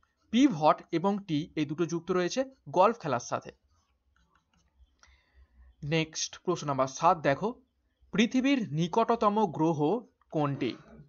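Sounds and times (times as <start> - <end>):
man speaking: 0.3 - 3.6, 5.8 - 11.0.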